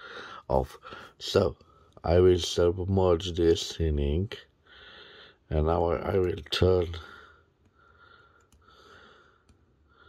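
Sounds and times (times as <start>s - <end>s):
soft breathing close to microphone: 0.0s - 2.0s, 4.6s - 5.5s, 7.0s - 10.0s.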